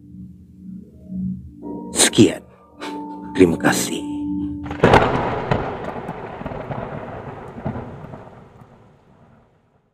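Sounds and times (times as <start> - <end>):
thunder-like rumbling tail: 4.6 - 9.9.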